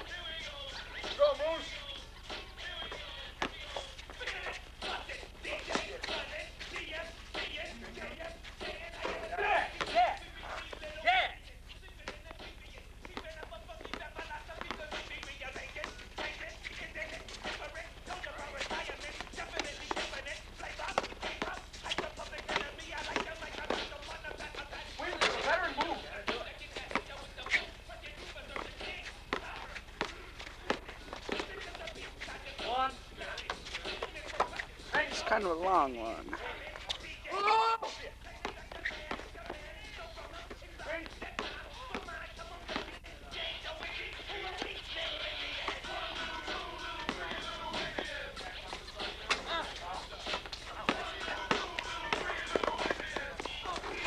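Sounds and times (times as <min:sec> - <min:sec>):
indistinct shouts: 0:09.3 - 0:10.2, 0:37.3 - 0:38.0.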